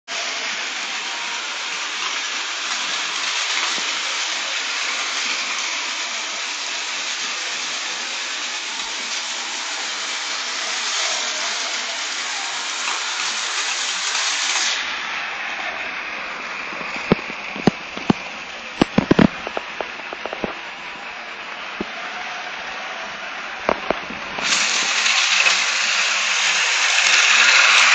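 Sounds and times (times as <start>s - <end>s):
toy trains rattling hum: 0.1s - 27.9s
sharp plastic clicks and knocks: 16.8s - 20.6s.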